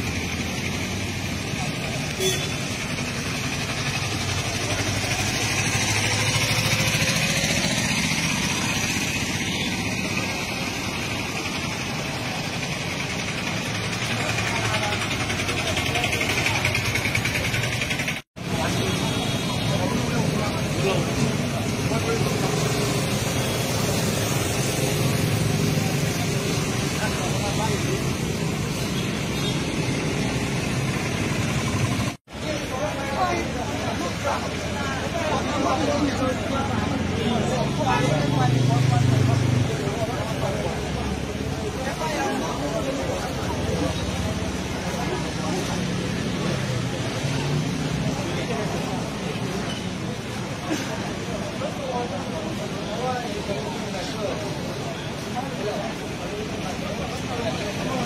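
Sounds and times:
cars and motorcycles passing: 0.0s - 58.0s
indistinct crowd voices: 0.0s - 58.0s.

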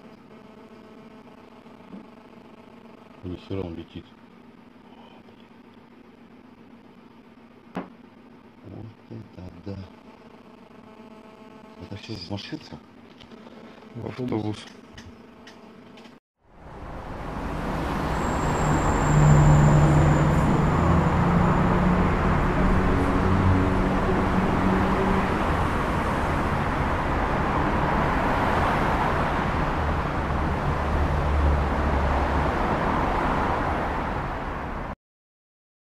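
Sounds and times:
vehicle road noise: 16.4s - 35.0s
low engine hum: 16.6s - 34.9s.

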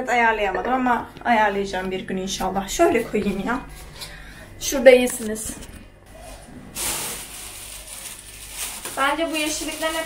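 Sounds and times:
plastic bag crinkling: 6.6s - 10.0s.

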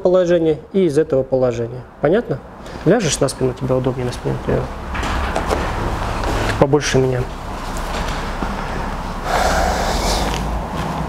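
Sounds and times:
low room hum: 0.0s - 11.0s
person breathing out noisily: 9.2s - 10.5s.

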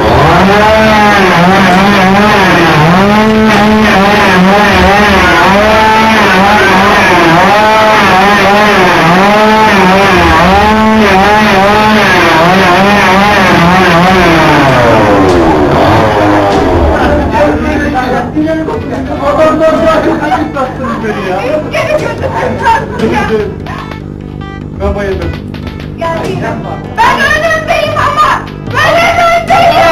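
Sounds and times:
motor revving up and down: 0.0s - 18.4s.

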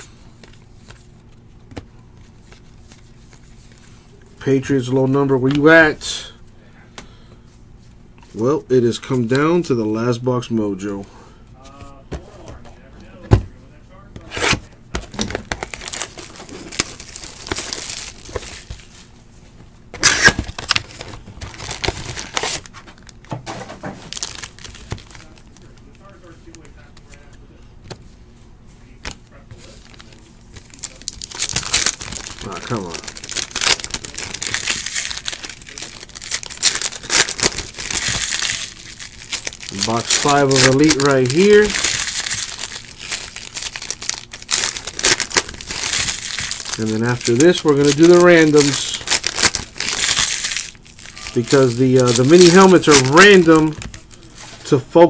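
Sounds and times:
foil wrappers crinkling and tearing: 14.2s - 19.1s, 20.0s - 27.3s, 29.0s - 55.0s.

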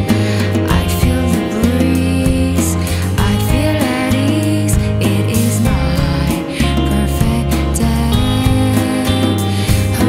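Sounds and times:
bass: 0.0s - 10.0s
person singing: 0.0s - 10.0s
strummed acoustic guitar: 0.0s - 10.0s.

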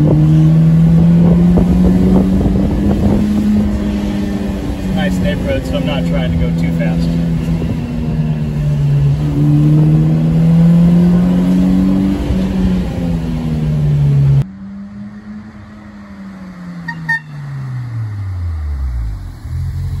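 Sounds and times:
car engine under load inside cabin: 0.0s - 20.0s
car driving by: 1.5s - 20.0s.

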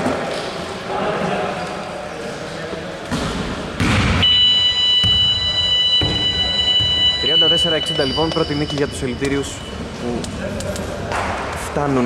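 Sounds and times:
voices echoing in a hall: 0.0s - 12.0s
loud thud: 3.1s - 4.3s
high-pitched electronic tone: 4.2s - 9.9s.

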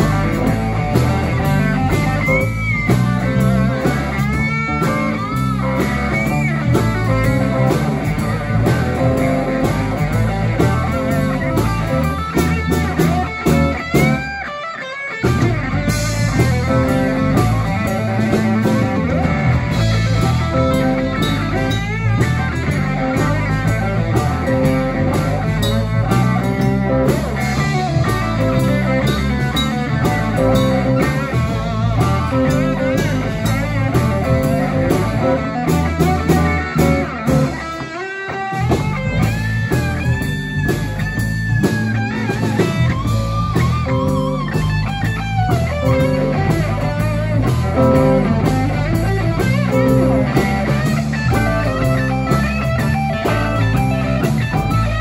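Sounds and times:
bass guitar: 0.0s - 55.0s
drums: 0.0s - 55.0s
electric guitar lead: 0.0s - 55.0s.

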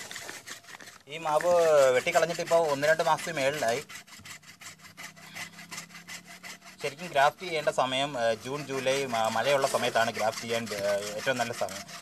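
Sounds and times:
hacksaw cutting wood: 0.0s - 12.0s
person talking: 6.8s - 11.8s.

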